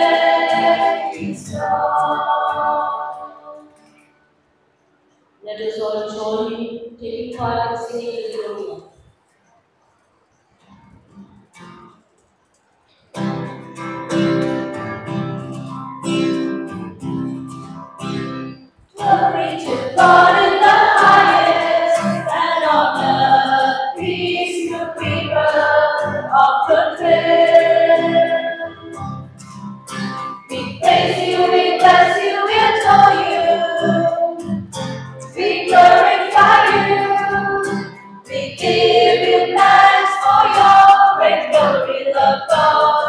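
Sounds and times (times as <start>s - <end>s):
choir singing a hymn: 0.0s - 3.8s, 19.0s - 29.0s, 30.5s - 34.7s, 35.3s - 43.0s.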